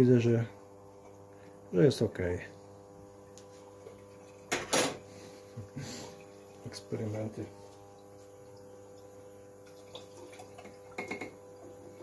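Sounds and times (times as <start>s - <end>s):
faint hum: 0.0s - 12.0s
person sniffing: 5.2s - 6.2s.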